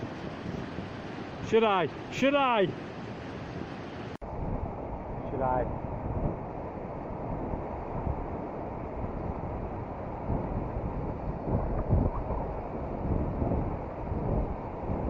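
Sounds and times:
rushing river rapids: 0.0s - 4.2s
wind buffeting microphone: 0.0s - 15.0s.

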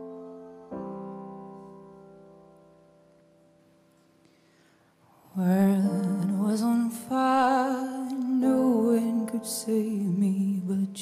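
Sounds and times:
held piano chord: 0.0s - 4.7s.

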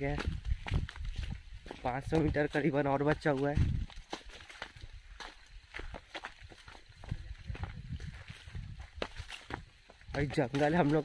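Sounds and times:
footsteps on forest trail: 0.0s - 11.0s.

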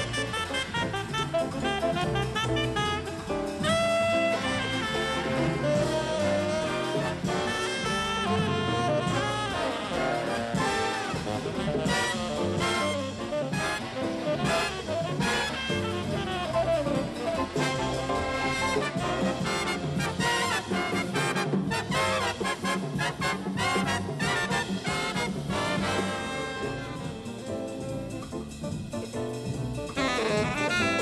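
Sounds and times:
big band playing samba: 0.0s - 31.0s.

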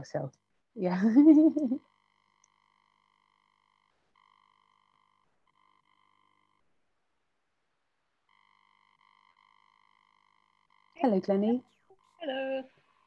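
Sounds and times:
faint steady electronic tone: 0.0s - 13.0s.

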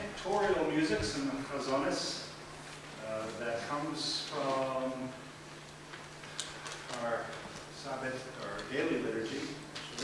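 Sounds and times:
man speaking: 0.0s - 2.4s, 3.0s - 5.2s.

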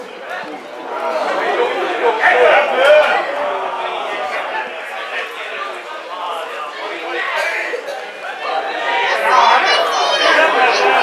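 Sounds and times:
people shouting and chattering: 0.0s - 11.0s.

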